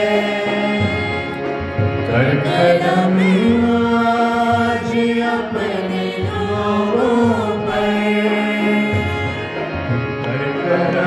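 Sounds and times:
harmonium chords: 0.0s - 11.0s
man singing: 2.1s - 5.2s, 10.2s - 11.0s.

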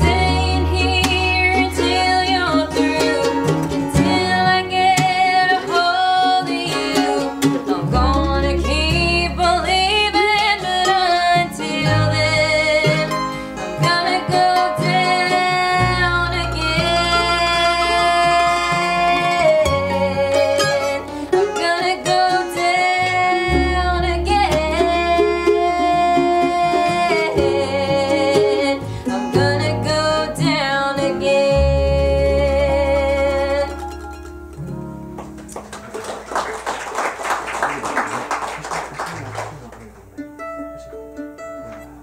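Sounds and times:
person singing: 0.0s - 34.1s
acoustic guitars: 0.0s - 42.0s
mandolin: 0.0s - 42.0s.

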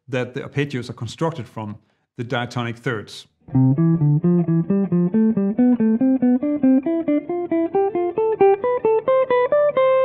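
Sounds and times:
electric jazz guitar playing a scale: 3.5s - 10.0s.

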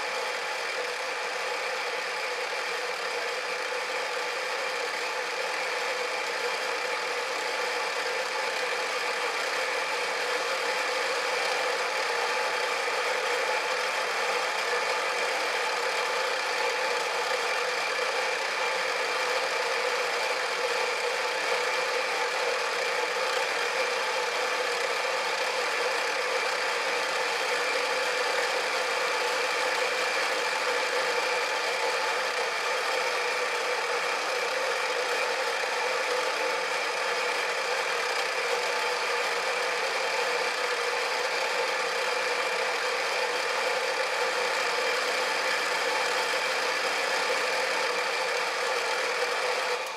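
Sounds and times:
rotary cutter machine humming: 0.0s - 49.9s.

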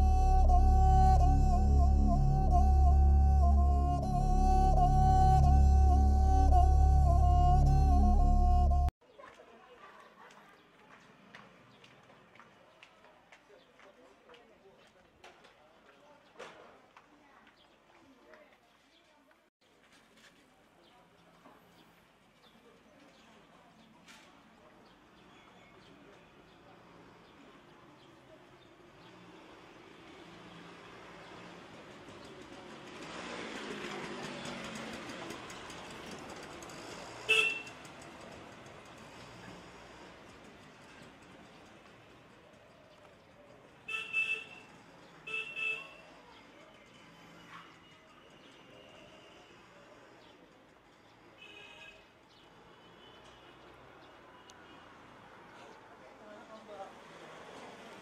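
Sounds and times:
vehicle passing: 0.0s - 8.9s, 29.1s - 41.5s
faint street ambience: 0.0s - 58.0s
short loud vehicle horn toot: 37.3s - 37.7s, 43.9s - 44.6s.

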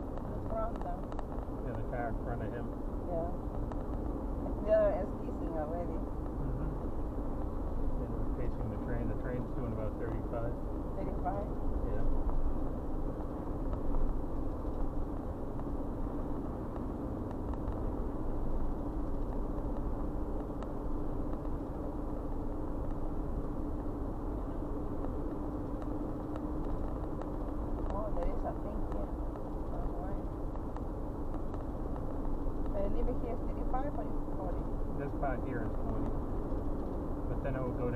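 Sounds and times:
car cabin road and engine noise: 0.0s - 37.9s
steady low hum: 0.0s - 37.9s.

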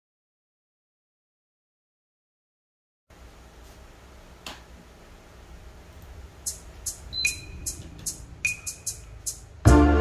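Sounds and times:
hi-hat ticks: 6.4s - 9.8s.

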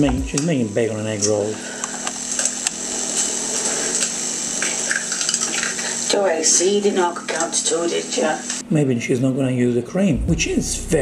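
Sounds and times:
low hum: 0.0s - 6.0s, 9.7s - 11.0s
steady hiss: 0.0s - 9.2s
egg cracking: 1.8s - 6.0s.

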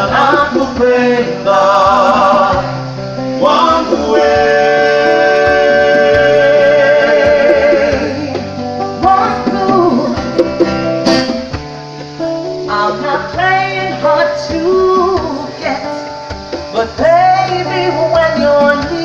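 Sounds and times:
plucked acoustic guitar: 0.0s - 19.0s
hand drums: 0.1s - 1.1s, 5.5s - 12.1s
woman singing: 9.0s - 10.4s, 12.7s - 16.0s, 16.7s - 19.0s.

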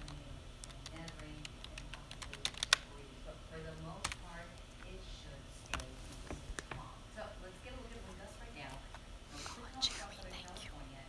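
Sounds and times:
person whispering: 9.4s - 10.9s.

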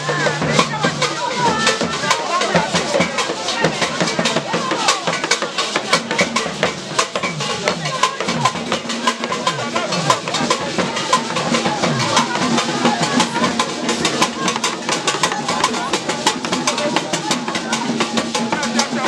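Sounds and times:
crowd voices: 0.0s - 19.0s
hand drums in fast rhythm: 0.0s - 19.0s
people singing: 7.0s - 19.0s.

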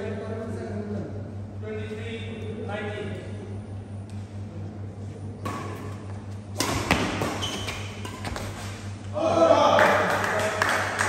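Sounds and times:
steady low hum: 0.0s - 11.0s
racquet hitting shuttlecock: 5.4s - 9.0s.

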